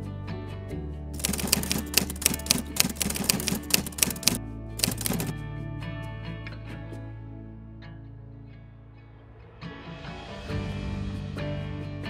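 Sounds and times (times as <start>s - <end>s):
typewriter keys clacking: 1.2s - 5.3s.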